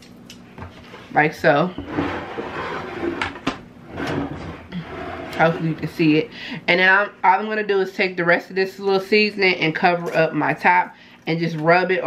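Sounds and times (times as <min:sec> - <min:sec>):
ceramic dish scraping on countertop: 0:01.7 - 0:05.7.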